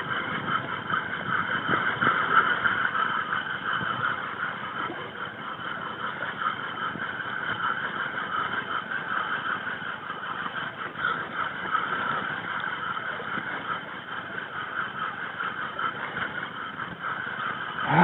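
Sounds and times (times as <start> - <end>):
fishing reel drag buzzing: 0.0 - 18.0.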